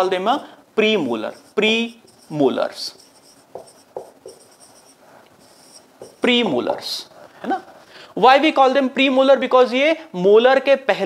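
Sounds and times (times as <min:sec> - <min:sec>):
marker squeaking on whiteboard: 0:01.1 - 0:07.9
marker tip tapping: 0:03.0 - 0:05.3, 0:06.0 - 0:06.8.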